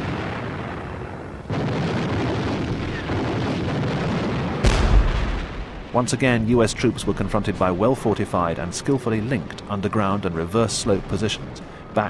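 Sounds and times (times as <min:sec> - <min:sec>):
artillery shell explosion: 0:00.0 - 0:07.4
gunfire rumble: 0:00.0 - 0:07.8.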